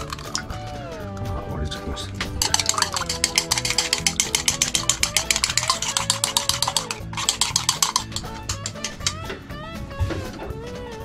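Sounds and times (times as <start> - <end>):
chopsticks beating eggs in bowl: 0.0 - 0.6, 2.2 - 9.2
background music: 0.0 - 11.0.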